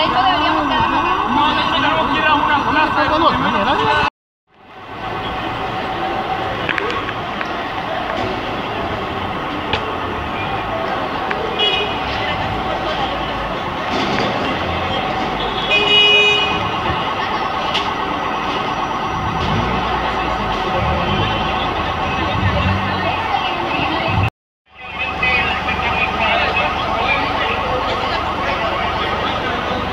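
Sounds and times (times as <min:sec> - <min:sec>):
continuous alarm tone: 0:00.0 - 0:04.1, 0:16.6 - 0:29.9
people talking: 0:00.0 - 0:04.1, 0:05.2 - 0:29.9
traffic: 0:00.0 - 0:29.9
car horn toots: 0:15.4 - 0:16.8.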